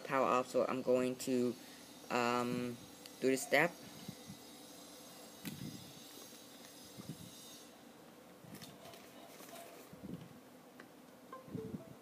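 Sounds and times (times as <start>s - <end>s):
steady low hiss: 9.9s - 12.0s.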